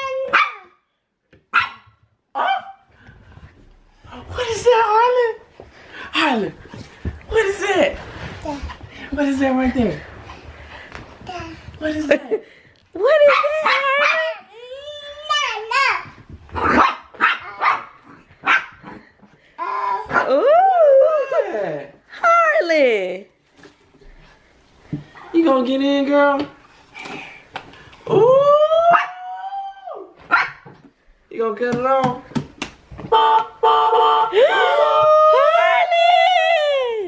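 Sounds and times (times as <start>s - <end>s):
dog barking: 0.3s - 0.8s, 1.5s - 2.8s, 16.6s - 19.0s, 30.3s - 30.6s.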